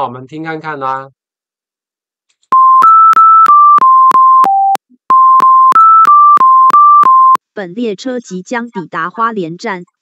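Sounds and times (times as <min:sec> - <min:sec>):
electronic buzzer melody: 0:02.6 - 0:07.4.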